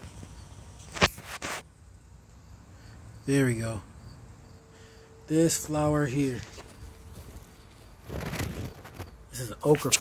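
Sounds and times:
leaves rustling: 0:05.7 - 0:10.0.

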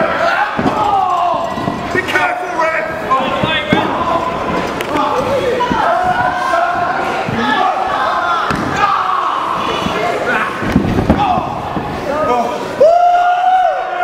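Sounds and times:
crowd shouting: 0:00.0 - 0:14.0.

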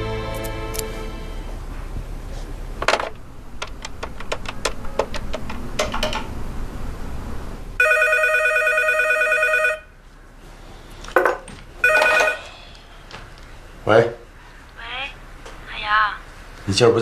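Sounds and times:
telephone ringing electronic trill: 0:07.8 - 0:09.9, 0:11.8 - 0:12.5.

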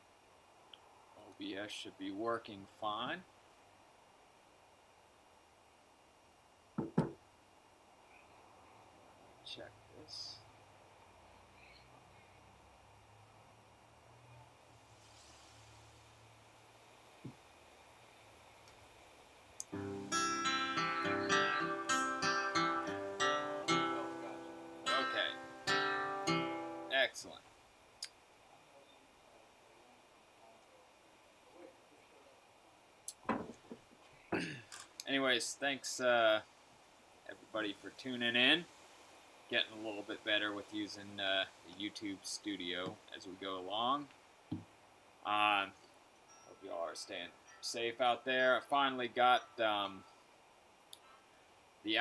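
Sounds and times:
hand knocking: 0:06.8 - 0:07.2
acoustic guitar strum: 0:19.7 - 0:26.9.

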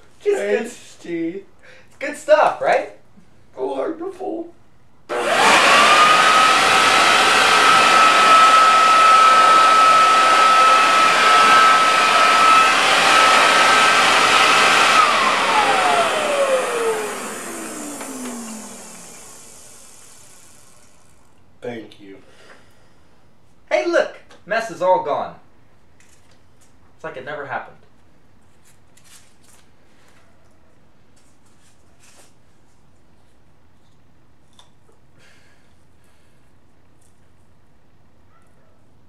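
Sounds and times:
electric leaf blower whining: 0:05.1 - 0:21.2.

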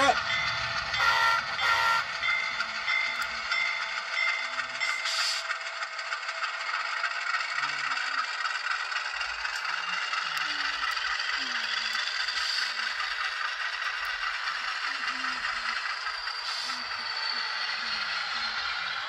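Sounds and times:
diesel engine sound effect: 0:00.0 - 0:19.0
model train rattle and whir: 0:00.0 - 0:19.0.

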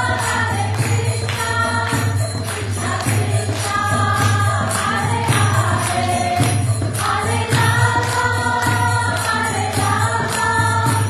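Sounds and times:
group singing a chant: 0:00.0 - 0:11.0
hand-clapping: 0:00.0 - 0:11.0
small percussion: 0:00.0 - 0:11.0.

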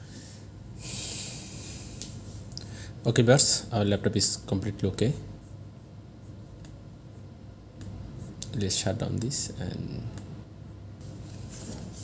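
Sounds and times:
person breathing out through nose: 0:00.0 - 0:03.0.

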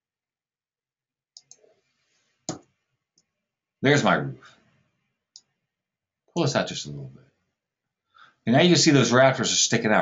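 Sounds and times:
computer mouse clicking: 0:01.4 - 0:01.7, 0:02.5 - 0:02.7.

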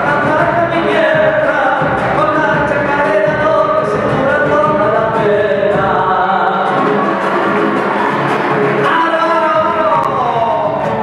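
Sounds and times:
large drum beat: 0:00.0 - 0:11.0
strummed guitars: 0:00.0 - 0:11.0.

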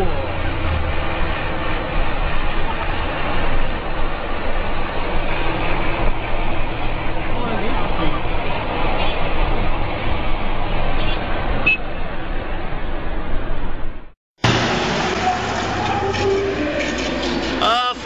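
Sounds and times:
people talking: 0:00.0 - 0:00.5, 0:07.3 - 0:08.3, 0:15.1 - 0:18.0
road and traffic noise: 0:00.0 - 0:18.0.

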